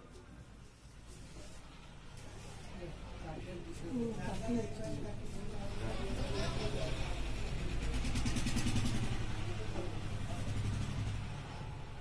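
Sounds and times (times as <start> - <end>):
vehicle engine running: 5.6 - 12.0.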